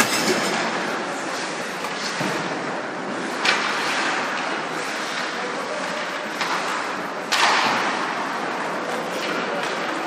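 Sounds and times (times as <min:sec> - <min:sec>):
skates on ice: 0:00.0 - 0:10.0.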